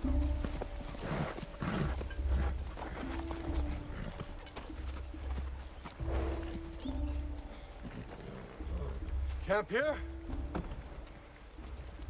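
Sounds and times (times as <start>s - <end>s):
horse hooves clopping: 0.0s - 12.0s.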